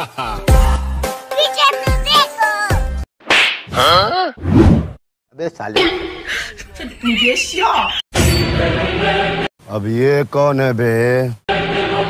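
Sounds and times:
sharp slap on head: 3.2s - 3.7s.

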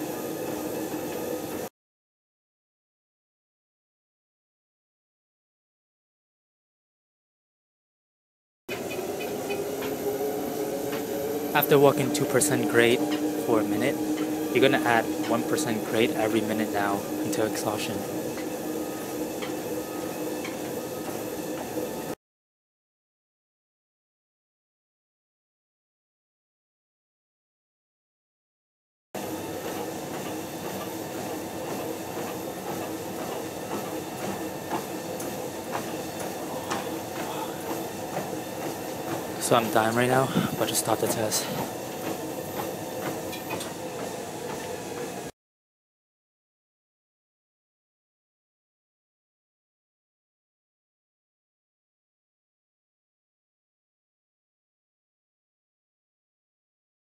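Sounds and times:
treadmill motor and belt hum: 0.0s - 1.7s, 8.7s - 22.2s, 29.2s - 45.3s.

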